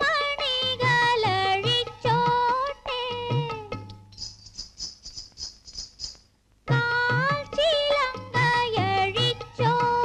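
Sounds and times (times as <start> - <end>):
woman singing: 0.0 - 3.8, 6.7 - 10.0
jingling percussion: 3.7 - 6.3.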